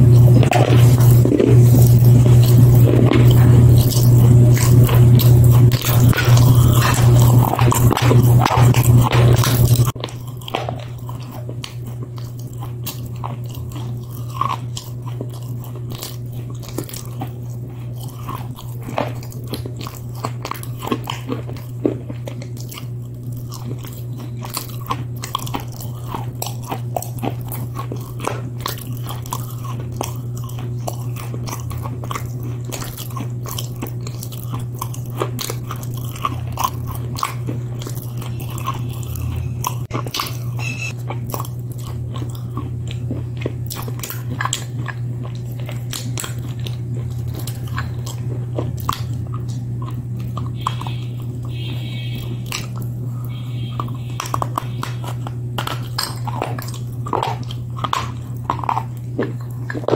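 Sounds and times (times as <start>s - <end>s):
crunching and chewing: 0.0s - 59.9s
low hum: 0.0s - 59.9s.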